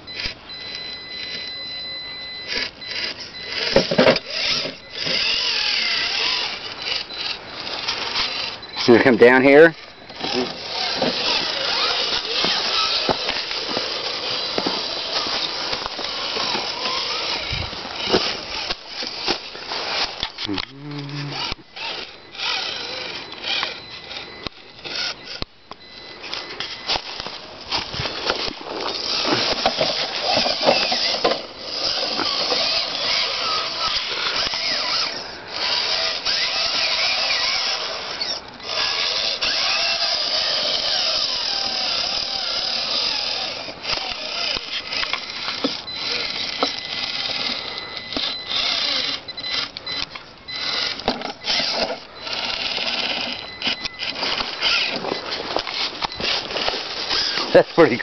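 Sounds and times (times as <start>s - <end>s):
electric motor whining: 0.0s - 58.0s.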